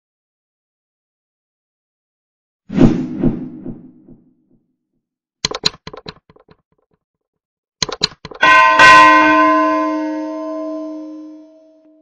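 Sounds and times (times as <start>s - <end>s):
quick mouse clicks: 5.4s - 6.5s
bell ringing: 8.4s - 12.0s.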